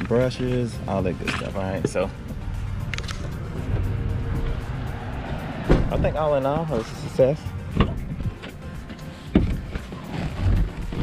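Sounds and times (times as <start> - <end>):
background music: 0.0 - 11.0
low rumble: 2.1 - 8.4.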